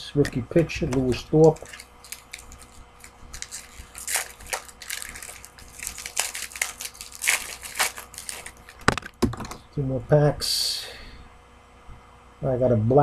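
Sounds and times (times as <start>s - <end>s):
cards being handled: 0.8s - 9.2s
foil wrapper crinkling: 0.9s - 9.2s.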